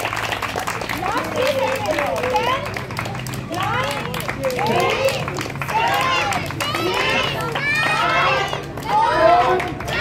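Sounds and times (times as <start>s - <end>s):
crowd shouting: 4.6s - 10.0s.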